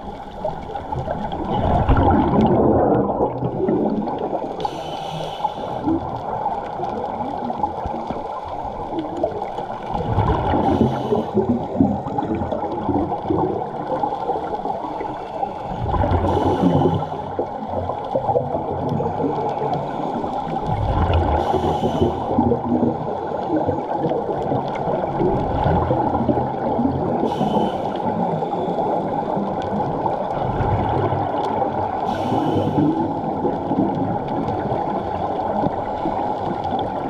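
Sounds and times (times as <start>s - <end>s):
scuba exhaust bubbles: 0.0s - 37.0s
underwater water noise: 0.0s - 37.0s.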